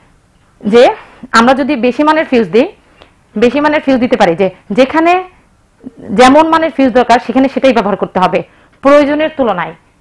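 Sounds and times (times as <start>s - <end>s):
woman talking: 0.6s - 9.8s.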